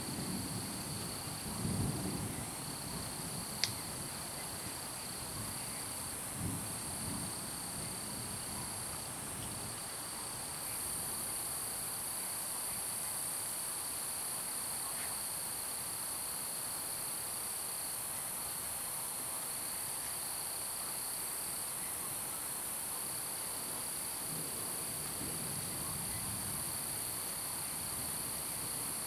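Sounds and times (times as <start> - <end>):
crickets chirping: 0.0 - 29.0.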